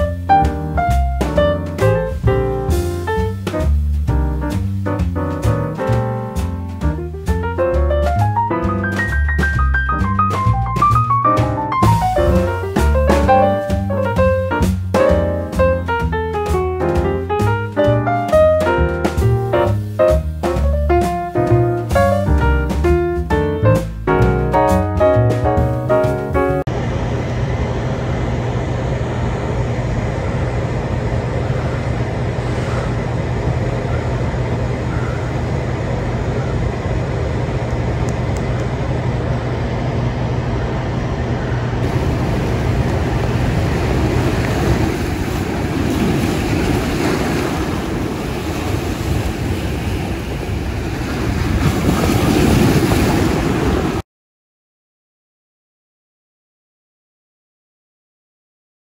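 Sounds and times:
low hum: 0:00.0 - 0:25.4, 0:26.6 - 0:51.1
piano tune: 0:00.0 - 0:26.9, 0:41.8 - 0:47.9
steady rushing noise: 0:25.1 - 0:54.0.

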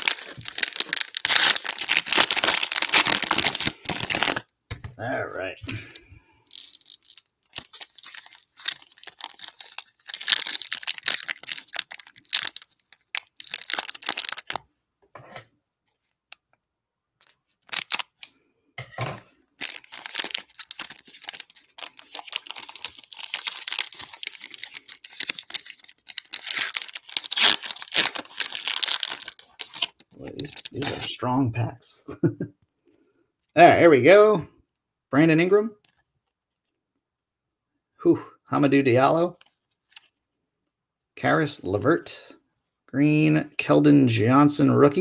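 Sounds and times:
foil wrapper tearing and crinkling: 0:00.0 - 0:04.4, 0:06.5 - 0:14.6, 0:17.6 - 0:18.3, 0:19.6 - 0:31.1.

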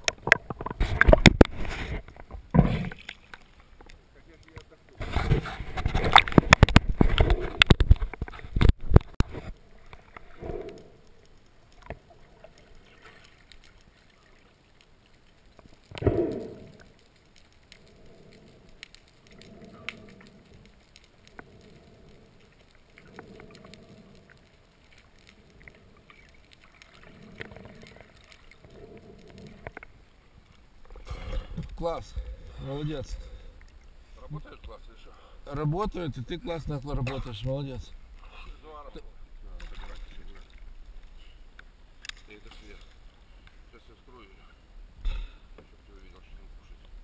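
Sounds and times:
faint clicks: 0:00.0 - 0:04.8, 0:05.8 - 0:44.3
water splashing: 0:00.0 - 0:44.5.

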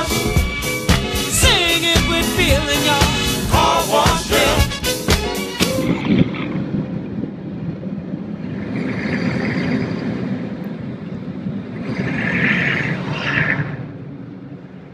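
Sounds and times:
car wash machinery rumbling: 0:00.0 - 0:12.6.

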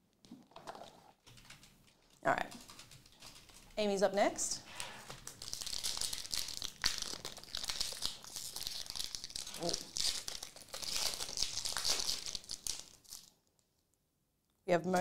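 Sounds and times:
foil wrapper crinkling and tearing: 0:05.1 - 0:13.6.

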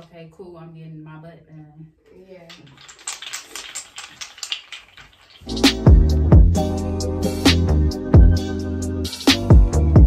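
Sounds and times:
wooden massage tool clicking: 0:02.5 - 0:05.5.

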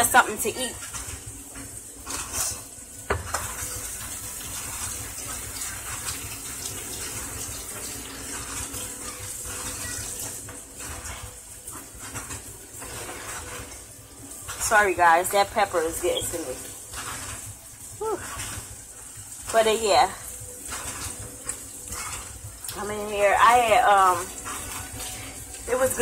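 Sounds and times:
water running from tap: 0:00.0 - 0:26.0.

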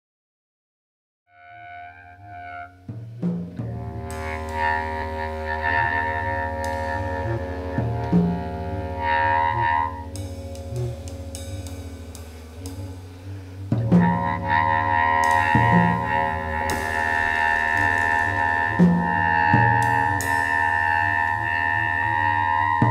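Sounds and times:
string and horn tones: 0:01.3 - 0:22.9
bass drone: 0:01.5 - 0:22.9
drum and cymbal strokes: 0:02.9 - 0:22.9.

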